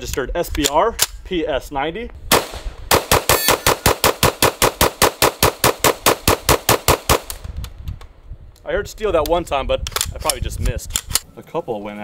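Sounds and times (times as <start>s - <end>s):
rapid gunfire: 2.3s - 7.3s.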